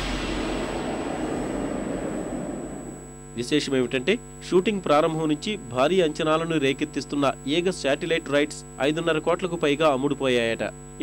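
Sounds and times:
low rumbling soundtrack noise: 0:00.0 - 0:03.4.

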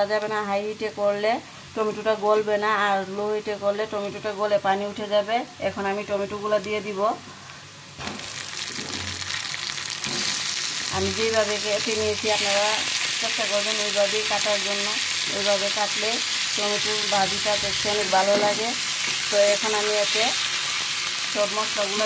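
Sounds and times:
food sizzling in hot oil: 0:07.7 - 0:22.0
person speaking: 0:16.0 - 0:18.8.

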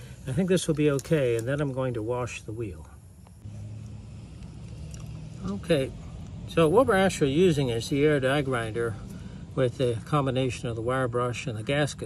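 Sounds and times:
low machine hum: 0:01.5 - 0:12.0.

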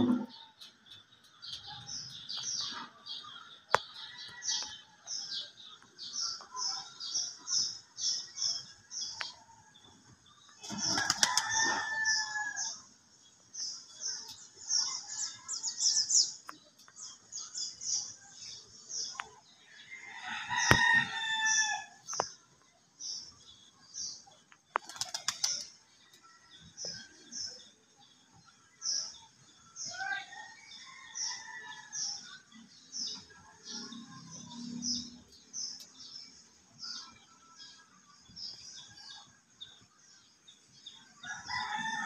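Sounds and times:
birds chirping: 0:00.0 - 0:42.0.

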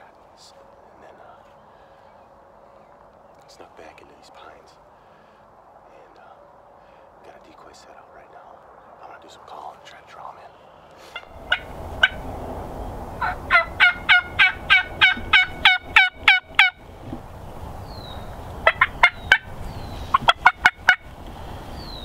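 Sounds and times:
turkey yelping: 0:11.1 - 0:12.3, 0:13.2 - 0:17.2, 0:18.0 - 0:21.1.

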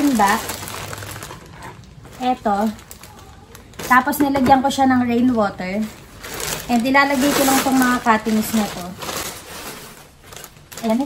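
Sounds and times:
plastic bag crinkling: 0:00.0 - 0:04.4, 0:05.6 - 0:11.0.

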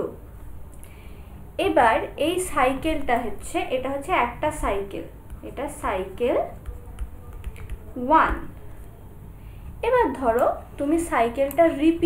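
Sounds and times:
person speaking: 0:01.6 - 0:12.0
stylus tapping on tablet: 0:05.2 - 0:08.8.

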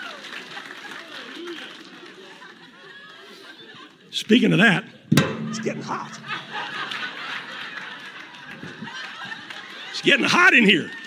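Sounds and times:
room of people laughing: 0:00.4 - 0:04.2, 0:06.3 - 0:10.3.

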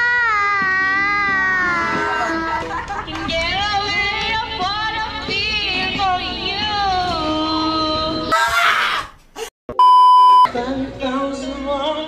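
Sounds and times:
karaoke singing: 0:00.0 - 0:08.4, 0:10.5 - 0:12.0
high test-tone beep: 0:09.7 - 0:10.5.

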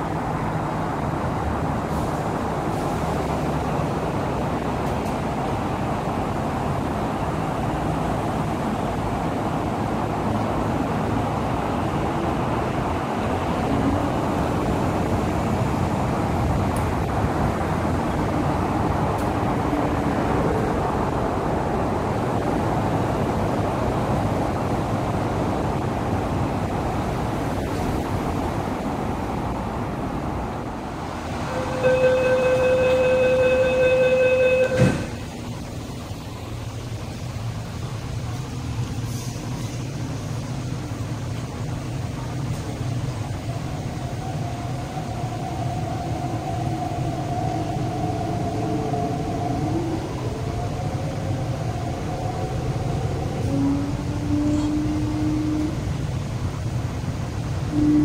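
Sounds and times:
train carriage hum: 0:00.0 - 0:58.0
electric train running: 0:31.2 - 0:37.2
electronic warning tone: 0:31.5 - 0:35.0.

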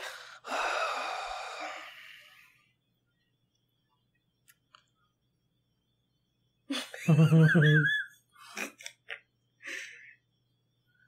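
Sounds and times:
person exhaling breathily: 0:00.0 - 0:02.6.

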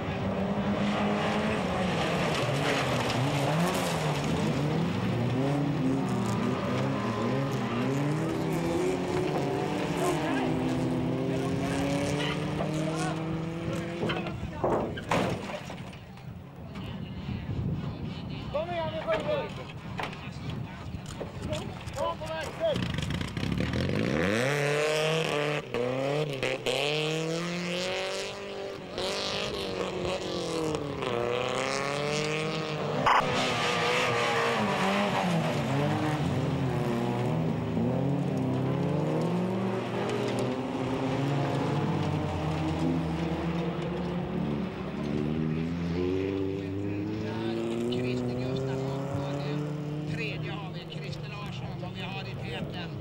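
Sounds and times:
race car engines revving: 0:00.0 - 0:53.0.

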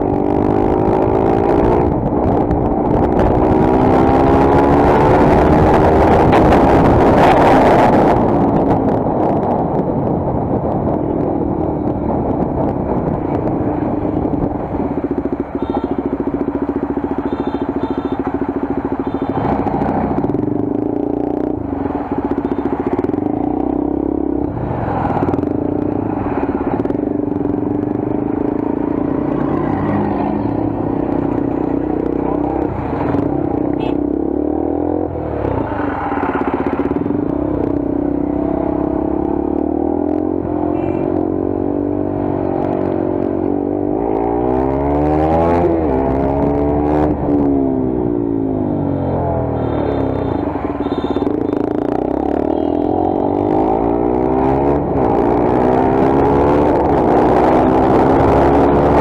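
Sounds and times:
motorcycle engine running: 0:00.0 - 0:44.2, 0:45.7 - 0:59.0
surrounding traffic: 0:00.0 - 0:59.0
wind: 0:00.0 - 0:59.0.

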